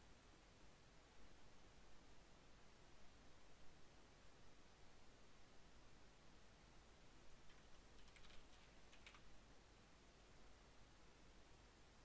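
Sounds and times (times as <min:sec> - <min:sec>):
computer keyboard clicks: 0:07.4 - 0:09.3.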